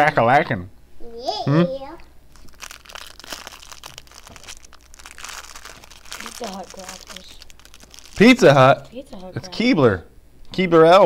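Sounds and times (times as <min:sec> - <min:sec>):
plastic wrapper crinkling: 0:02.3 - 0:08.9.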